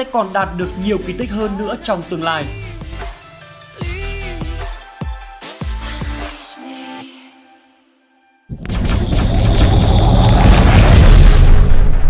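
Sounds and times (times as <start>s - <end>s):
deep boom and rumble: 8.5s - 12.0s.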